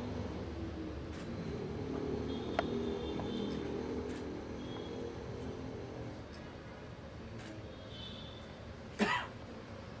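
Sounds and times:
person coughing: 0:09.0 - 0:09.4.

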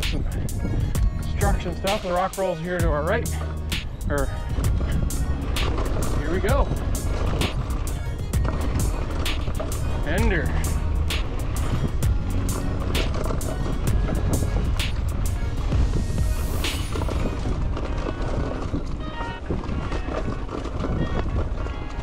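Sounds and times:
background music: 0:00.0 - 0:19.5
bike rattling knocks: 0:00.0 - 0:22.0
bike tyres rumbling on dirt: 0:00.0 - 0:22.0
wind on microphone: 0:00.0 - 0:22.0.

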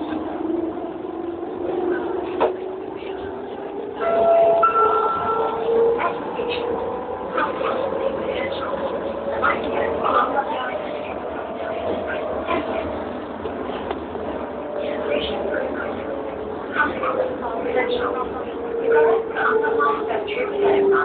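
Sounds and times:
passengers' voices: 0:00.0 - 0:21.0
train ride rumble: 0:00.0 - 0:21.0.

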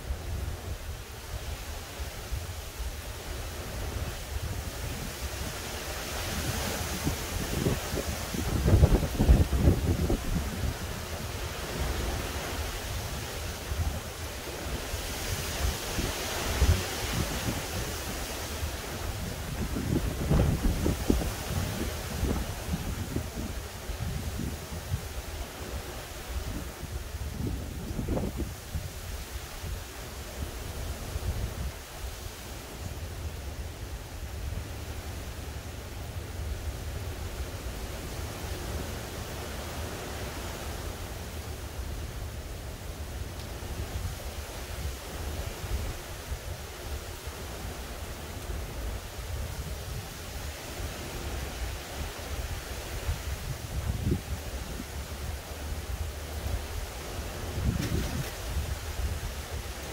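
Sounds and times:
wind buffeting microphone: 0:00.0 - 0:32.2, 0:43.6 - 0:59.9
gusty wind: 0:00.0 - 0:59.9.

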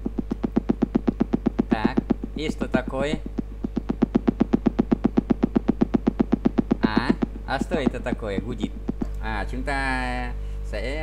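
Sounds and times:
rapid pulsing buzz: 0:00.0 - 0:11.0
steady low hum: 0:00.0 - 0:11.0.

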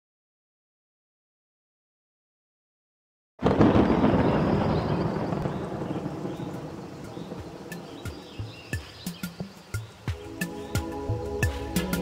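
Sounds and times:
intro music: 0:07.3 - 0:12.0.

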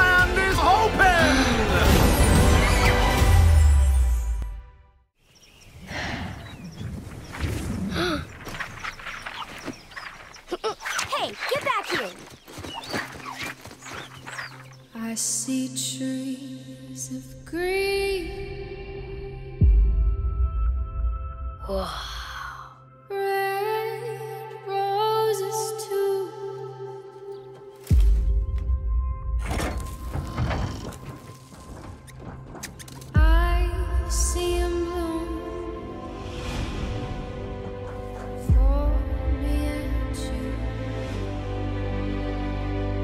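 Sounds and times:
film trailer music: 0:00.0 - 0:05.2, 0:13.3 - 0:23.8, 0:26.5 - 0:43.0
high bird-like chirps: 0:05.2 - 0:15.0.

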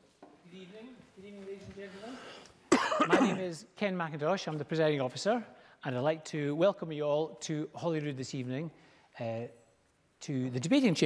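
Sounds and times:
man coughing: 0:02.7 - 0:03.6.

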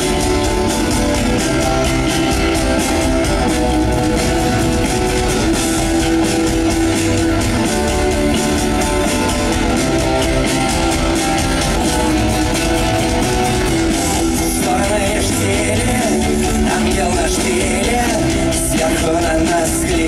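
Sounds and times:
drum kit beat: 0:00.0 - 0:20.0
electric and acoustic guitars: 0:00.0 - 0:20.0.

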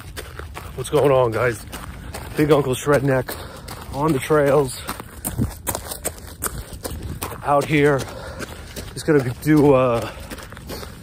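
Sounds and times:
running footsteps on dirt: 0:00.0 - 0:11.0
wind rumble: 0:00.0 - 0:11.0.

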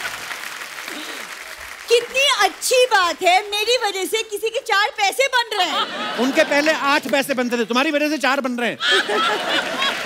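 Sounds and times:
audience applauding: 0:00.0 - 0:03.8.

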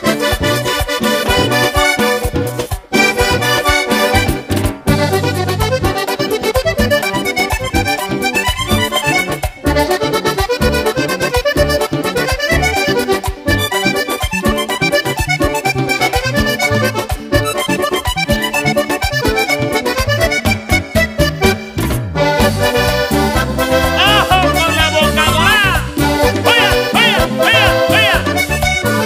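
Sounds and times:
bass: 0:00.0 - 0:29.0
button accordion melody: 0:00.0 - 0:29.0
percussion steady beat: 0:22.6 - 0:29.0.

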